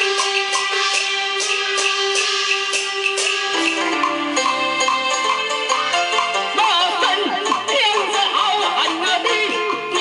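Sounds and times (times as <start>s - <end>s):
steady percussion beat: 0.0s - 10.0s.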